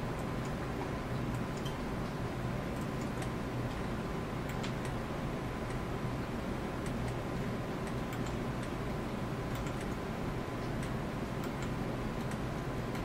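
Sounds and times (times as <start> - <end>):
steady background hum: 0.0 - 13.0
mouse scroll wheel ticks: 7.8 - 8.8, 9.5 - 10.0.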